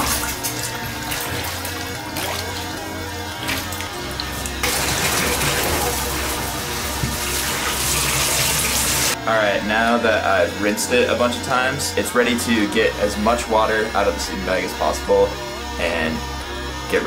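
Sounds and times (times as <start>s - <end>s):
water pouring into bathtub: 0.0s - 9.2s
background music with steady beat: 0.0s - 17.0s.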